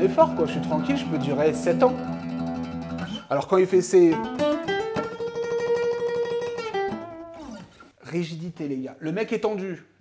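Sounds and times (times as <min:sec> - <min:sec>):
acoustic guitar phrase: 0:00.0 - 0:08.0.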